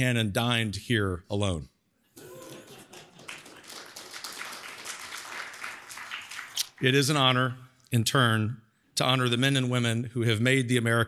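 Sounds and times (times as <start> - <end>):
speech: 0.0 - 1.8, 6.8 - 11.0
audience applauding: 2.2 - 6.9.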